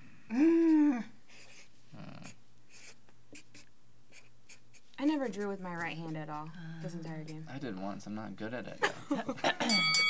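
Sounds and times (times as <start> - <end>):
marker scratching on paper: 1.3 - 7.5.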